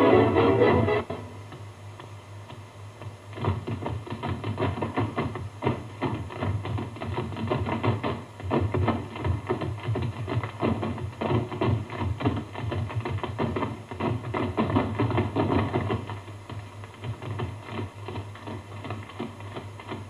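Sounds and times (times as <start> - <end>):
music: 0.0 - 1.4
tap shoes clicking on hard floor: 1.5 - 20.0.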